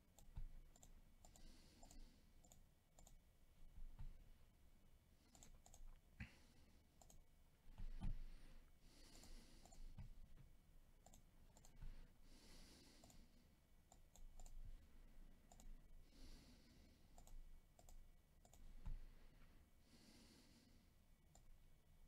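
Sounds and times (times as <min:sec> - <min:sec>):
computer mouse clicks: 0:00.0 - 0:03.2, 0:05.2 - 0:06.4, 0:07.0 - 0:08.3, 0:09.1 - 0:12.0, 0:12.9 - 0:15.8, 0:17.1 - 0:19.1, 0:21.2 - 0:21.6.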